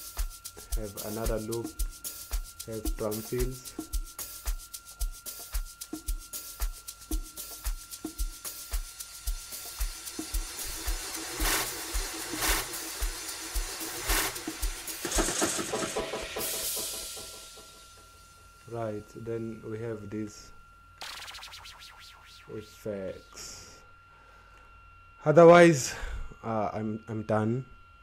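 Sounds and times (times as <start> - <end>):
shakers and percussion hits: 0.0 - 18.4
low kick drum: 0.2 - 11.0
drum fill: 6.0 - 18.0
swelling noise: 21.0 - 23.8.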